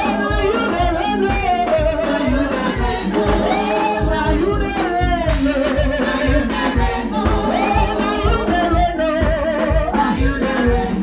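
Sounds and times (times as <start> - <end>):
fast steady drum beat: 0.0 - 11.0
voices singing gospel: 0.0 - 11.0.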